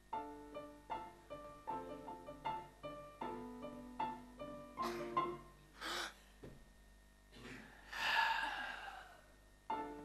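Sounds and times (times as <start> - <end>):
person sighing: 5.8 - 6.3, 7.4 - 9.4
person gasping: 5.8 - 6.4, 7.4 - 9.4.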